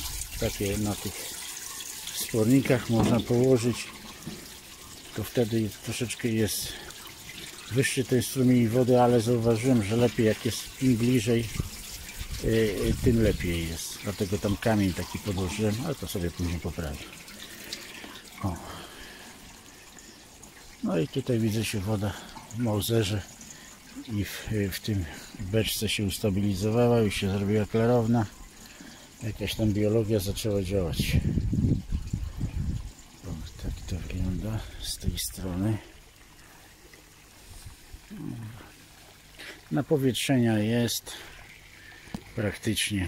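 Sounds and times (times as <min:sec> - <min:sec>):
faint steady hiss: 0:00.0 - 0:43.0
water pouring from a pipe: 0:00.0 - 0:43.0.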